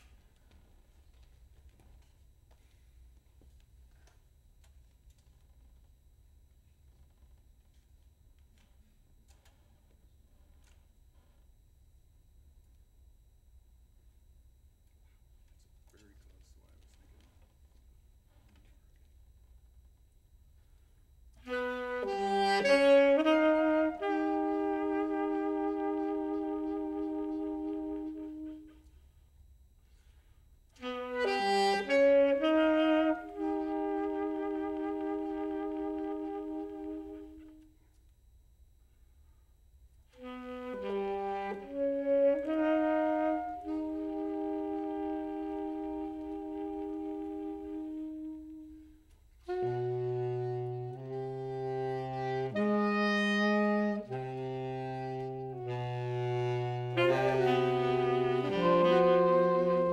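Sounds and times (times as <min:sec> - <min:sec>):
saxophone quartet playing: 0:21.4 - 0:29.0, 0:30.8 - 0:37.8, 0:40.1 - 0:59.9.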